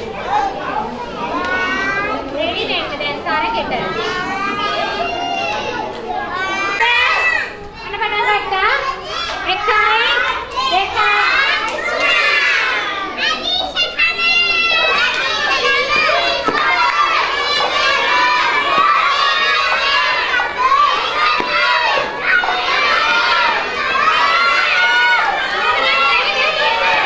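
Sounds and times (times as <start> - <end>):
young children chattering: 0.0 - 27.0.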